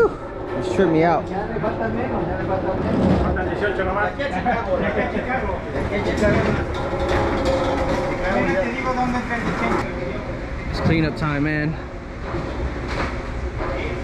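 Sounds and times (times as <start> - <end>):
steady low rumble: 0.0 - 14.0.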